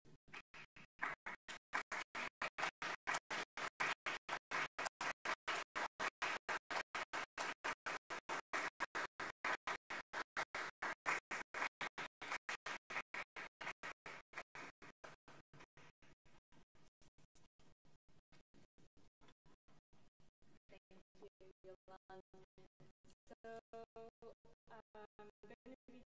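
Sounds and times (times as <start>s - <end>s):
audience applauding: 1.0s - 14.8s.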